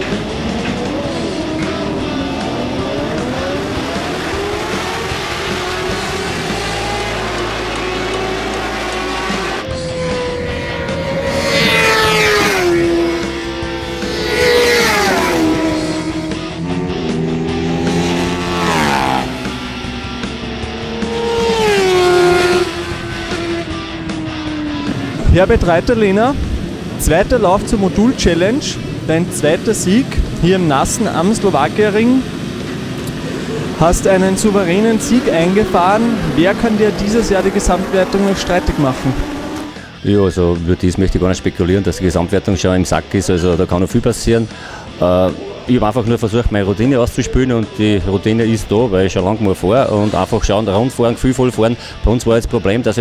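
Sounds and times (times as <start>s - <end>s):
motorcycles passing at speed: 0.0s - 40.0s
distant motorcycle engines accelerating: 0.0s - 53.0s.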